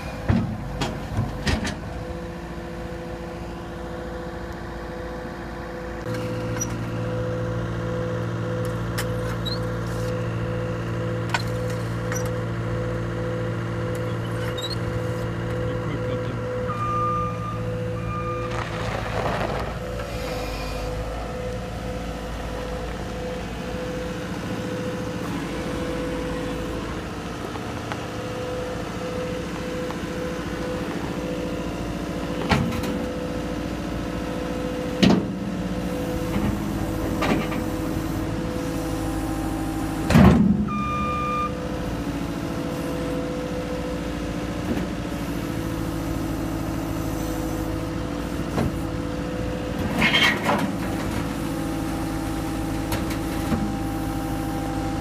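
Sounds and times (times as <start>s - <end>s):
diesel engine running: 0.0s - 55.0s.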